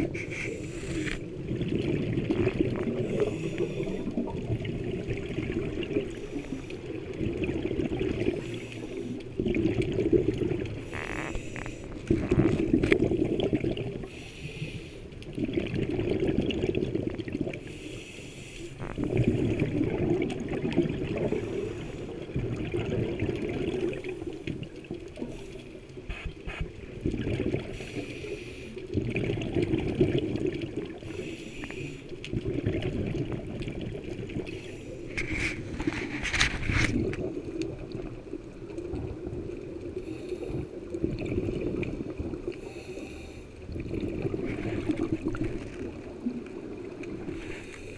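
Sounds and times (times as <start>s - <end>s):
exhaled bubbles gurgling underwater: 0.0s - 47.9s.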